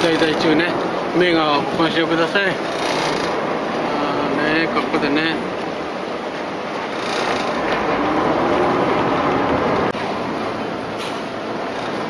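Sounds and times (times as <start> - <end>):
boat engine running: 0.0 - 10.5.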